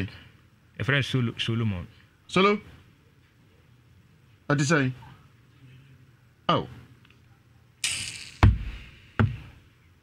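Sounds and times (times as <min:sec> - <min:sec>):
sharp thump: 0:07.8 - 0:09.4.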